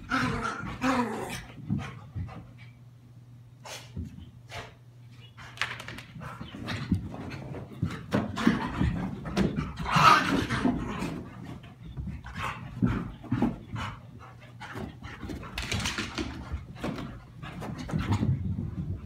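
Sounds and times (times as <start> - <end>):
dogs panting and scuffling: 0.0 - 19.0.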